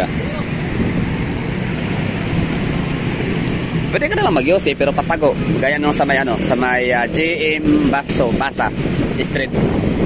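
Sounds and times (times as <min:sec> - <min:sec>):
truck passing close by: 0:00.0 - 0:07.9
low engine rumble: 0:00.0 - 0:10.0.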